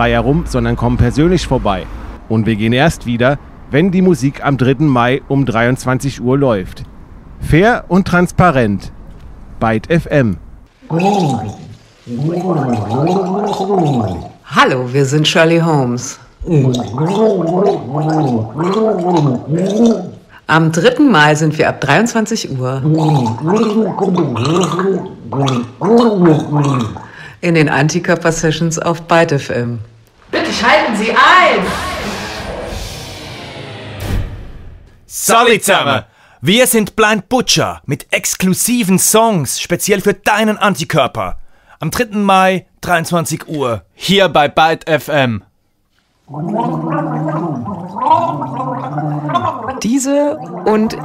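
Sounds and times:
man gargling: 10.8s - 14.4s, 16.4s - 20.3s, 22.8s - 27.1s, 46.3s - 51.0s.

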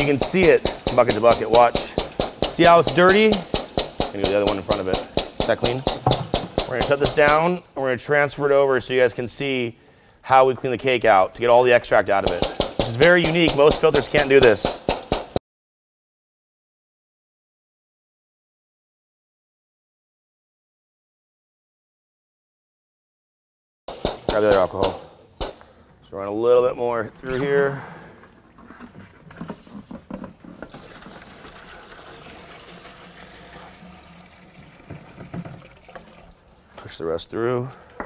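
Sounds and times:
voice: 0.0s - 3.4s, 4.1s - 5.8s, 6.7s - 14.7s, 24.3s - 25.0s, 26.0s - 27.9s, 36.8s - 37.8s
liquid splashing into plastic bucket: 30.6s - 36.7s.

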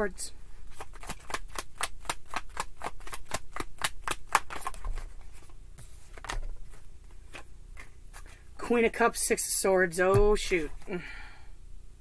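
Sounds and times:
cards being shuffled: 0.7s - 8.3s.

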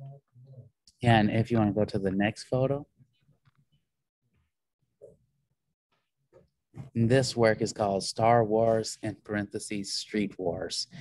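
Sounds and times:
man speaking: 7.0s - 11.0s.

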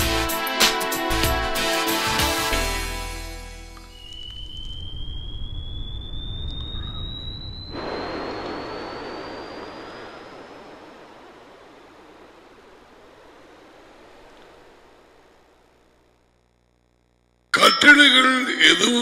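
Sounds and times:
jet engine whine: 3.8s - 16.0s
rush of jet noise: 7.7s - 15.4s.

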